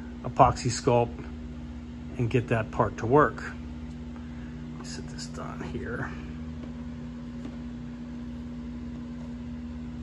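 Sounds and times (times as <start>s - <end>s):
steady machine hum: 0.0s - 10.0s.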